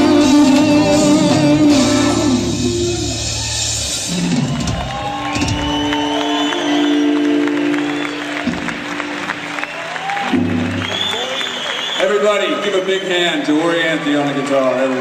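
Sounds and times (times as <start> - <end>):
live electric guitar and band: 0.0 - 11.9
crowd cheering and applauding: 2.3 - 15.0.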